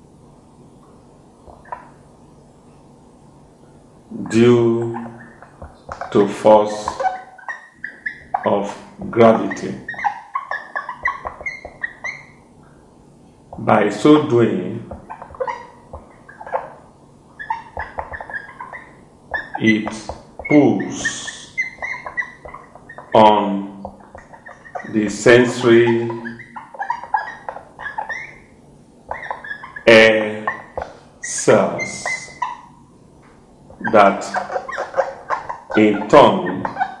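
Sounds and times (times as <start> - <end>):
marker squeaking on whiteboard: 1.4 - 2.0, 4.3 - 12.5, 13.5 - 32.8, 33.7 - 37.0.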